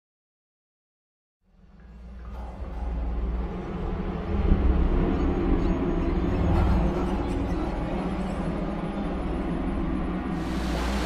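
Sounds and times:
deep steady rumble: 0:01.5 - 0:11.0.

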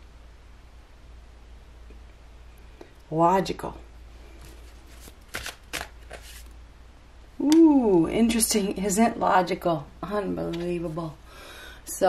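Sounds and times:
soft card strokes: 0:04.2 - 0:06.6
card snaps: 0:05.0 - 0:06.4.

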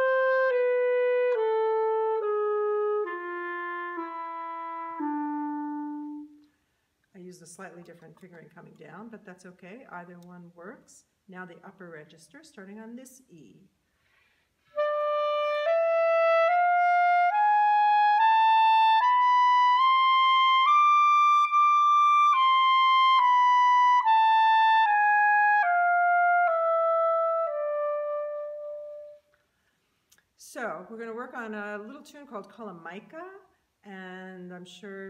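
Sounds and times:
clarinet playing a slow scale: 0:00.0 - 0:06.6, 0:14.6 - 0:29.4.

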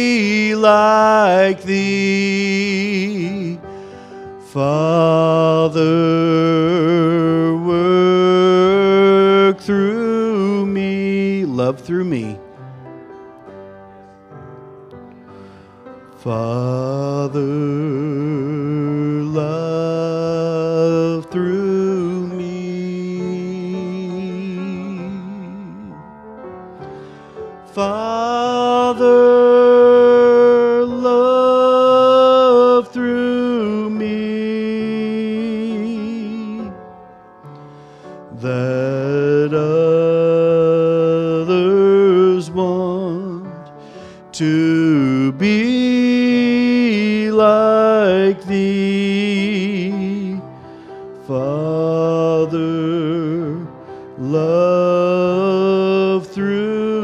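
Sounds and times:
man singing a hymn: 0:00.0 - 0:12.9, 0:15.5 - 0:57.0
instrumental accompaniment: 0:00.0 - 0:57.0.

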